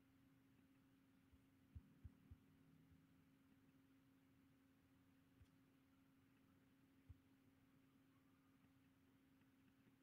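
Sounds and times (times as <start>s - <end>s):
faint steady hum: 0.0s - 10.0s
soft low thumps: 1.3s - 2.7s.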